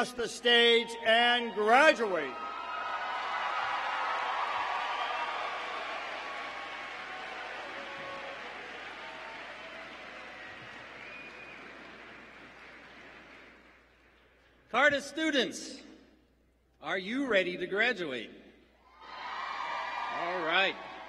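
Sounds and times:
audience applauding: 0:02.5 - 0:14.4.

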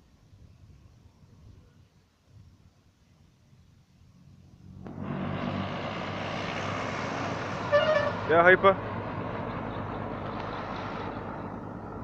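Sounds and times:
bus passing close by: 0:04.1 - 0:12.0
short horn toot: 0:07.7 - 0:08.2.

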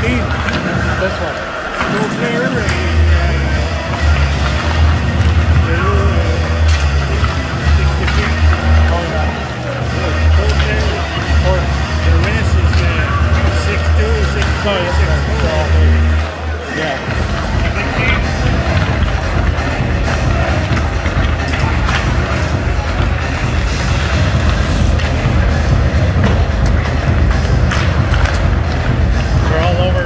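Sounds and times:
pucks and sticks clacking on ice: 0:00.0 - 0:16.3, 0:17.1 - 0:30.0
indistinct voices: 0:00.0 - 0:30.0
steady deep hum: 0:02.5 - 0:30.0
bass-heavy music over sound system: 0:02.6 - 0:16.4, 0:17.0 - 0:30.0.

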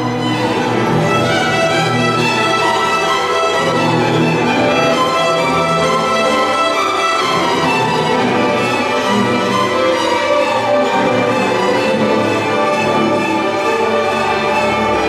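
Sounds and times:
string orchestra playing: 0:00.0 - 0:15.0.

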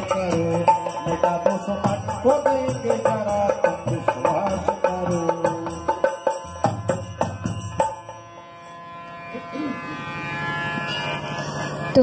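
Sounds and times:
harmonium chord: 0:00.0 - 0:12.0.

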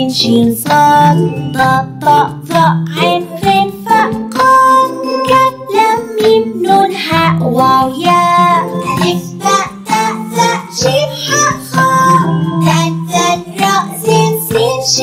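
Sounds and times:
child singing: 0:00.0 - 0:15.0
instrumental accompaniment: 0:00.0 - 0:15.0.

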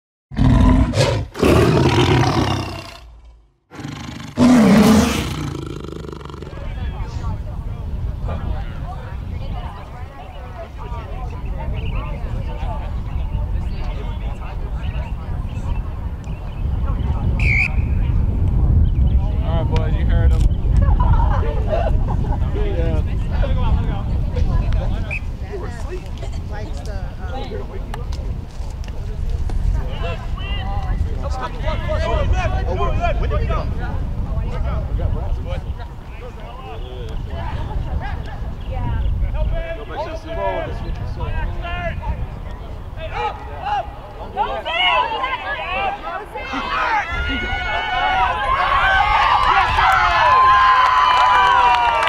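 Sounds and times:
big cat roar: 0:00.3 - 0:03.1, 0:03.7 - 0:06.7.

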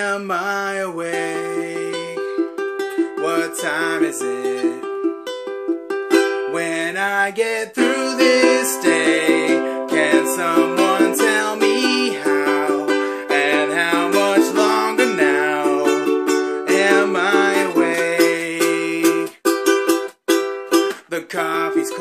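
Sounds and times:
man singing: 0:00.0 - 0:05.0, 0:06.3 - 0:19.6, 0:20.9 - 0:22.0
ukulele strumming: 0:00.0 - 0:22.0.

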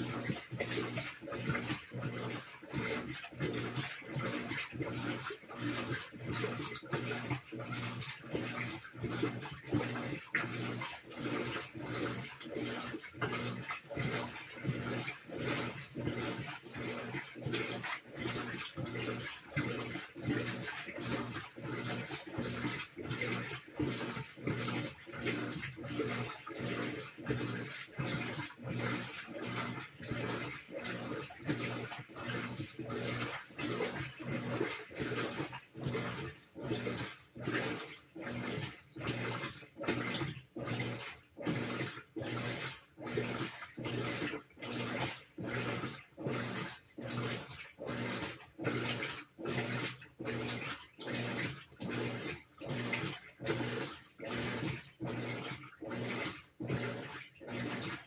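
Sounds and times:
motor hum: 0:00.0 - 0:58.0
washing machine agitating: 0:00.0 - 0:58.0
water sloshing: 0:00.0 - 0:58.0.

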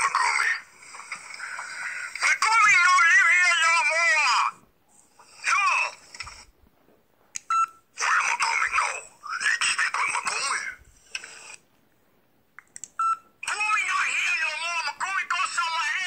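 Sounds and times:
man talking: 0:02.2 - 0:04.6, 0:13.4 - 0:16.0.

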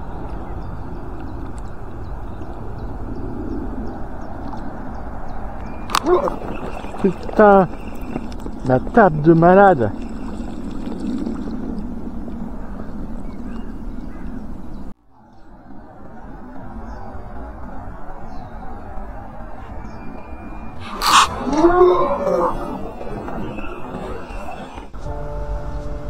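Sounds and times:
water splashing and rushing: 0:05.7 - 0:12.3.

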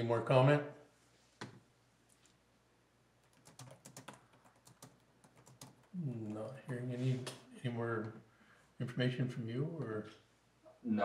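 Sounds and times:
laptop keyboard typing clicks: 0:03.2 - 0:06.0.

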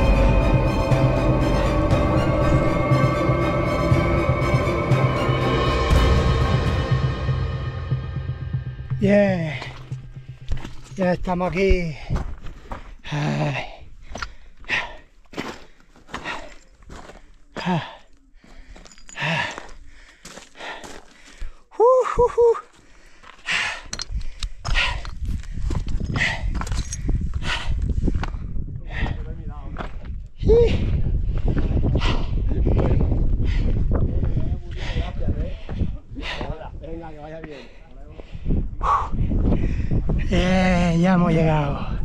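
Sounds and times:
footsteps on rock: 0:09.6 - 0:13.0, 0:14.0 - 0:21.6, 0:22.7 - 0:30.3
panting breaths: 0:11.9 - 0:21.6, 0:22.7 - 0:29.3, 0:30.7 - 0:40.0
wind rumbling on microphone: 0:24.0 - 0:37.4, 0:38.0 - 0:42.0.

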